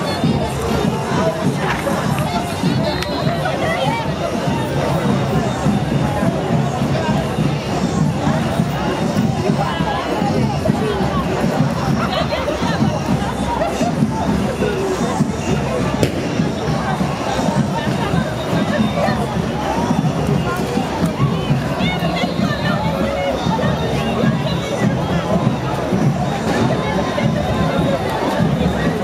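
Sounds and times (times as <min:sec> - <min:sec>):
crowd shouting and talking: 0:00.0 - 0:29.0
parade music: 0:13.0 - 0:23.1
sharp crack: 0:16.0 - 0:16.9.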